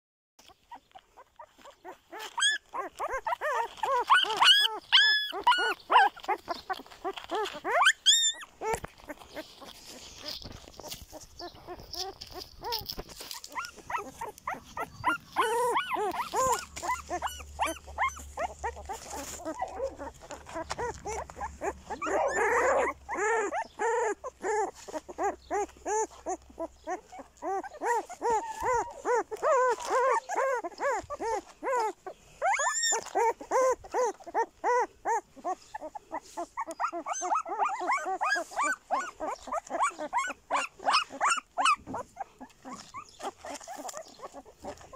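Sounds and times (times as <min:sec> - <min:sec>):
puppies whimpering and squealing: 0:00.4 - 0:44.9.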